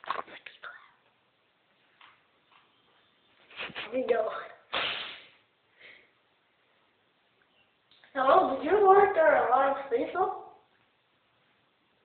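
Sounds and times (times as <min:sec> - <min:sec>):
person whispering: 0:00.2 - 0:01.0.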